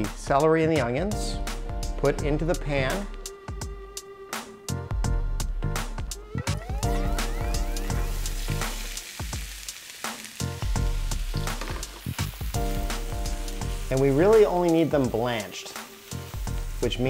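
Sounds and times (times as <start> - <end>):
background music: 0.0 - 17.0
vegetables sizzling in hot oil: 6.7 - 17.0.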